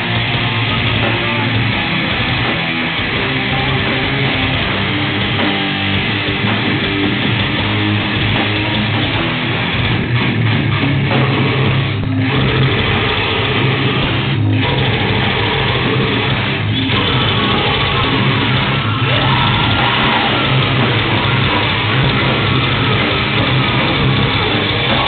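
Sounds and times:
metal band playing: 0:00.0 - 0:25.0.

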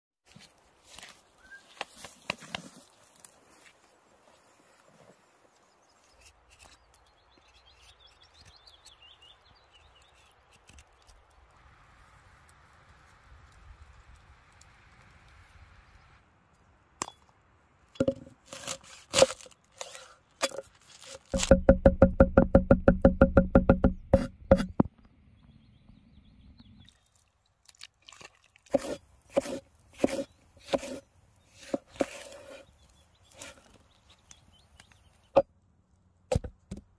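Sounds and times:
brush rustling: 0:00.3 - 0:06.7, 0:18.0 - 0:21.6
cleaver chopping on wooden board: 0:21.4 - 0:24.9, 0:28.8 - 0:31.0.

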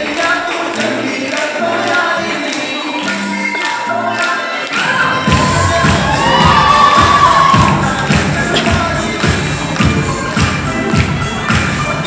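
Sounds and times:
dance song over loudspeakers: 0:00.0 - 0:12.0
audience cheering and shouting: 0:04.7 - 0:08.1.

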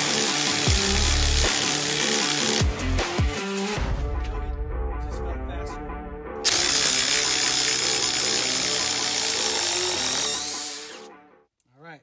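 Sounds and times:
background music: 0:00.0 - 0:11.5.

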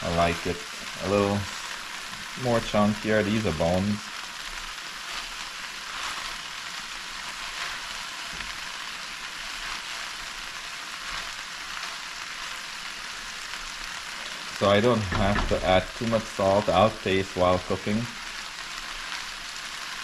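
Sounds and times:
food sizzling in a pan: 0:00.0 - 0:20.0.

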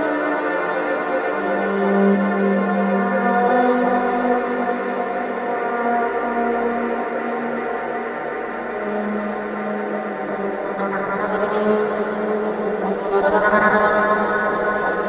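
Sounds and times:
slow electric violin music: 0:00.0 - 0:15.0.

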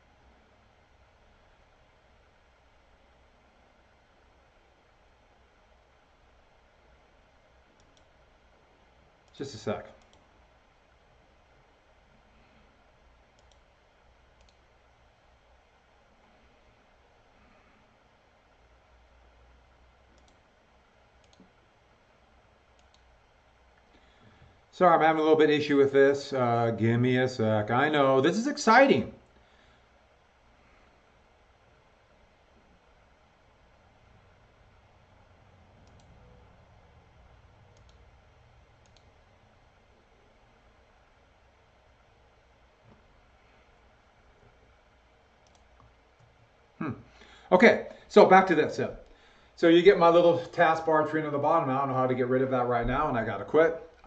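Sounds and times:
computer mouse clicks: 0:07.7 - 0:08.1, 0:09.2 - 0:10.3, 0:13.3 - 0:13.7, 0:14.3 - 0:14.7, 0:20.1 - 0:20.5, 0:21.2 - 0:21.6, 0:22.7 - 0:23.1, 0:35.8 - 0:36.3, 0:37.7 - 0:38.1, 0:38.8 - 0:39.2, 0:45.4 - 0:46.4.

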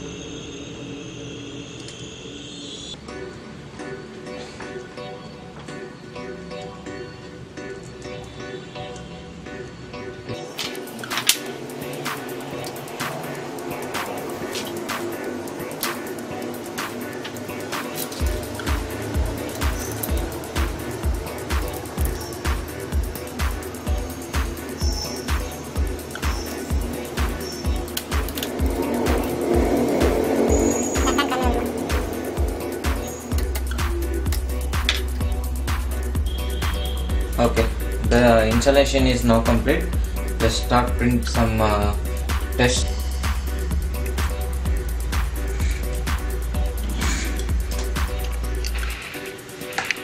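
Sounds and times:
background music with steady beat: 0:02.9 - 0:50.0
deep bass pulse: 0:18.2 - 0:48.6.

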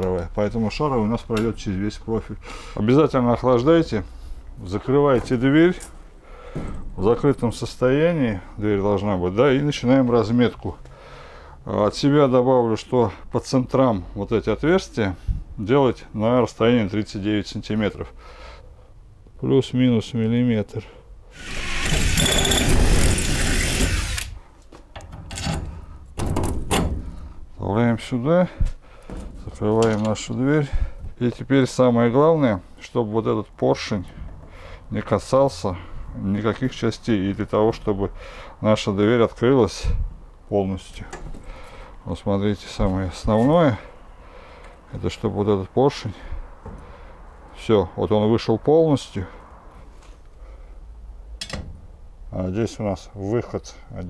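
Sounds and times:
electric drill boring metal: 0:21.4 - 0:24.4.

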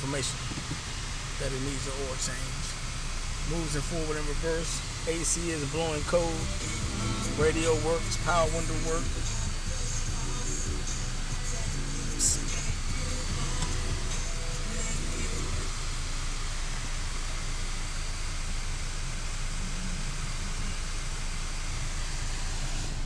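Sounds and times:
car radio playing music: 0:00.0 - 0:23.0
road and engine rumble: 0:00.0 - 0:23.0.

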